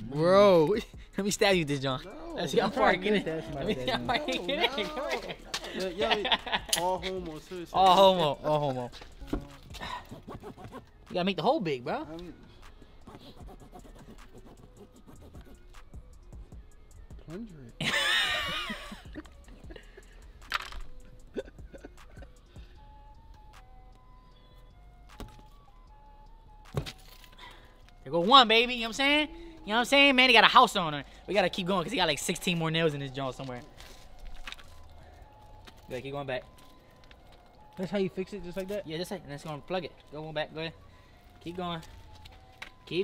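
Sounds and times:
men talking and laughing: 0.0s - 13.2s, 17.4s - 22.8s
faint background music: 0.0s - 43.0s.

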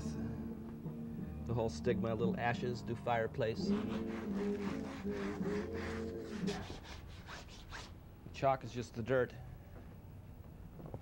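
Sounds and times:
music with held low notes: 0.0s - 6.9s
hand rubbing chalk on wall: 3.6s - 8.0s.

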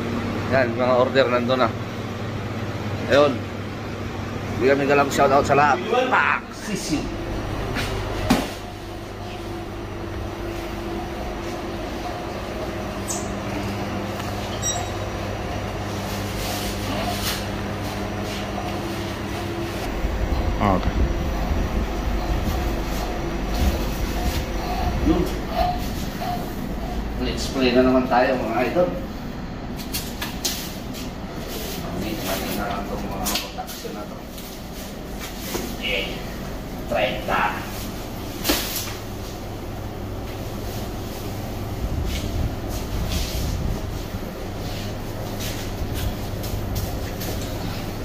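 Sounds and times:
ventilation machinery rumble: 0.0s - 48.0s.

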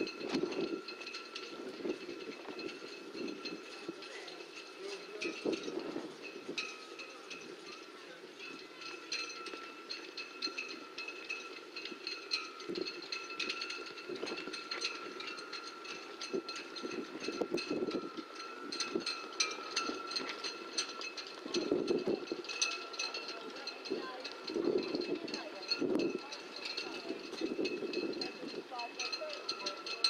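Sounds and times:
metal clinks: 0.0s - 30.0s.

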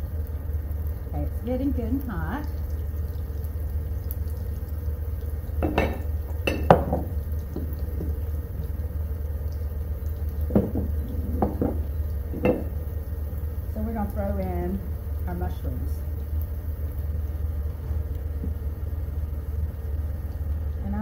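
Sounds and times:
onions sizzling in hot oil: 0.0s - 21.0s.

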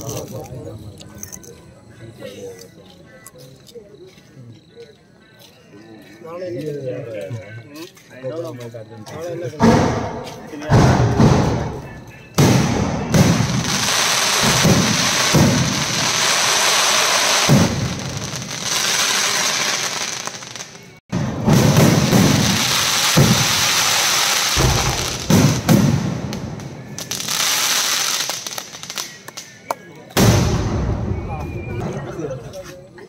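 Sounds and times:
firework shells bursting: 9.6s - 29.6s
fireworks crackling: 9.6s - 31.6s.

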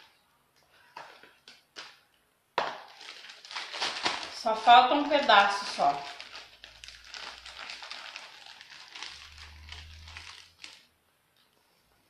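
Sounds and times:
plastic piping bag crinkling: 0.8s - 11.5s.

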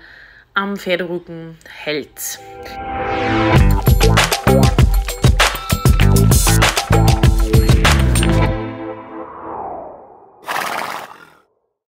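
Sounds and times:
horse whinny: 10.4s - 11.4s.

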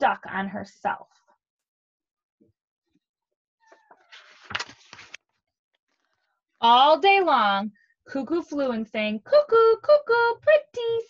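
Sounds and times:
paper page turning: 4.0s - 6.1s
paper crackles: 4.0s - 6.2s.

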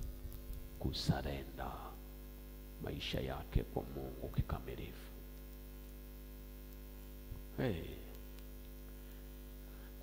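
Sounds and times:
electrical mains hum: 0.0s - 10.0s
man speaking: 0.8s - 2.0s, 2.8s - 5.2s, 7.5s - 8.2s.

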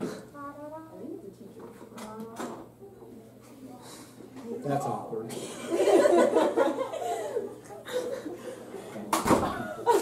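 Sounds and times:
faint indistinct voices: 0.0s - 5.7s.

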